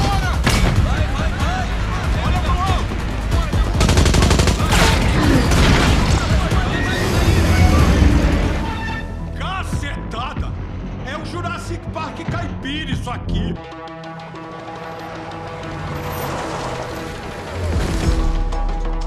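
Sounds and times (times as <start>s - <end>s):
film music score: 0.0s - 19.0s
automatic gunfire: 3.8s - 6.1s.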